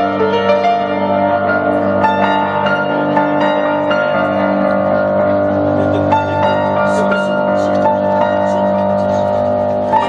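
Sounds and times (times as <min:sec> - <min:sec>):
upright piano chord: 0:00.0 - 0:10.0.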